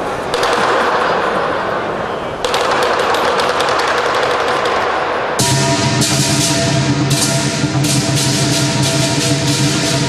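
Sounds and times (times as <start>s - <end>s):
drum cymbal and gong ensemble: 5.4s - 10.0s
steady metallic ring: 5.4s - 10.0s.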